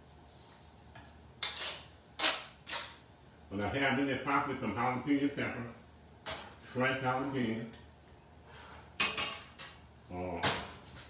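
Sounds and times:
tongs clattering on skillet: 0:09.0 - 0:09.9.

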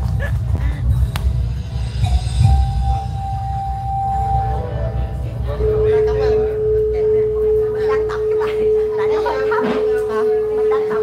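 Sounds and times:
steady ringing tone: 0:02.0 - 0:11.0.

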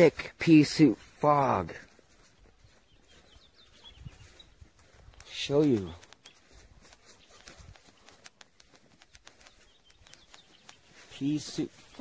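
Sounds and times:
light clicks: 0:05.0 - 0:11.1.

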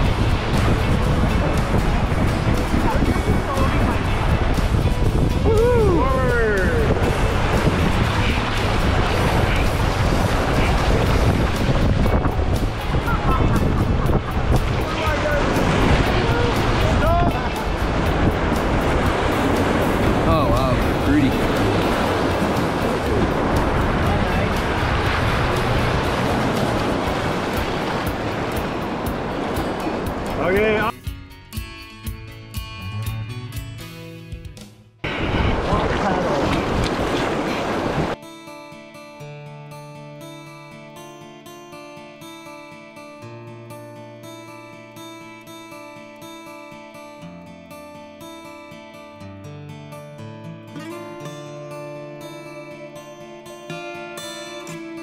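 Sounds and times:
rapids rushing: 0:00.0 - 0:30.9, 0:35.0 - 0:38.2
wind buffeting microphone: 0:00.0 - 0:30.9, 0:35.0 - 0:38.2.

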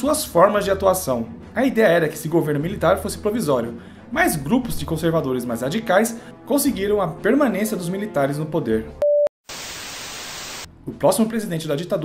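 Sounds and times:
tv static hiss: 0:09.4 - 0:10.7.

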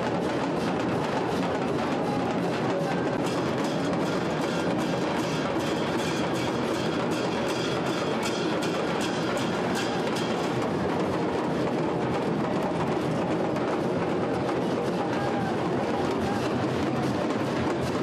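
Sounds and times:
crowd noise: 0:00.0 - 0:09.0, 0:09.6 - 0:18.0
rapid drumming: 0:00.0 - 0:18.0.

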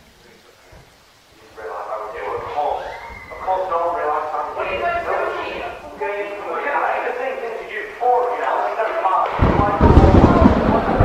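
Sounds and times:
garbled voices talking: 0:01.4 - 0:11.0.

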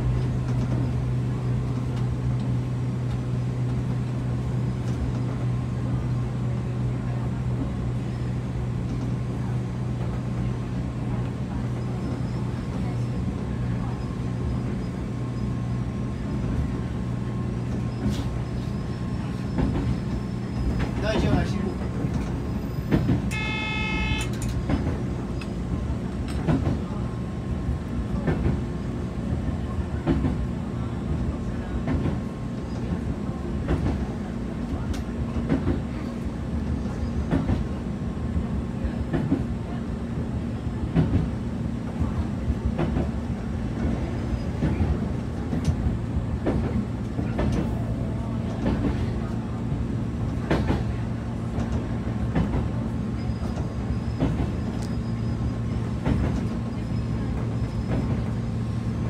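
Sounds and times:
electric train humming: 0:00.0 - 0:59.0
wheels clicking on rails: 0:16.3 - 0:28.8
short tone: 0:23.3 - 0:24.5.

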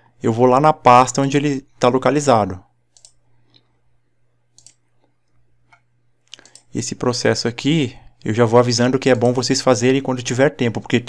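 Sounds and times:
computer mouse clicks: 0:02.9 - 0:03.7, 0:04.5 - 0:06.7.

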